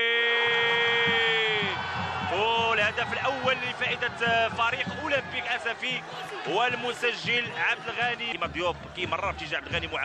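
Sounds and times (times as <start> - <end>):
commentator's goal cry: 0.0 - 8.6.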